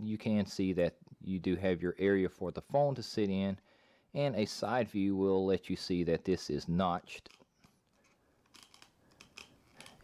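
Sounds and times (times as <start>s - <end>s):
small plastic clicks ratcheting: 7.3s - 10.0s.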